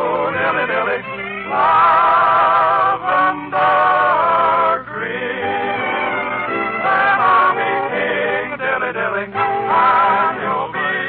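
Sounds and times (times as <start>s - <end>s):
male vocal quartet singing: 0.0s - 11.0s.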